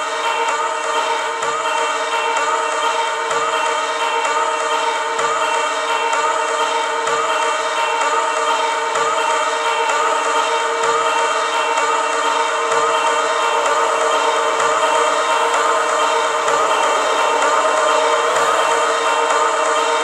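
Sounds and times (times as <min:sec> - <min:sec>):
synthesizer drone: 0:07.9 - 0:20.0.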